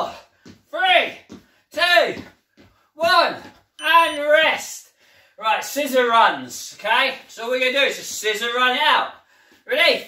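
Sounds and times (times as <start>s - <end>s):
man speaking: 3.0s - 9.1s.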